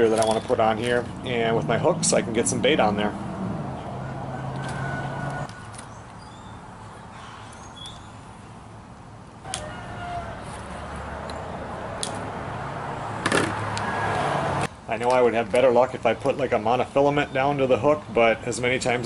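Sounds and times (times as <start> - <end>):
metal hooks clicking and clinking: 0.0 - 1.3.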